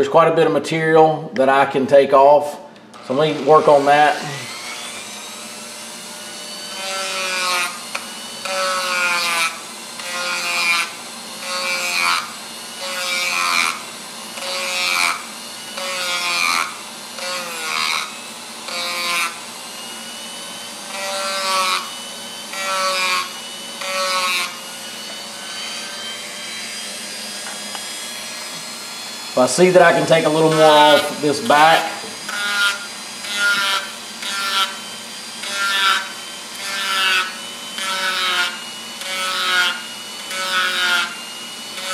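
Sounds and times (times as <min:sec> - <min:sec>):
rotary tool running: 0:02.9 - 0:41.9.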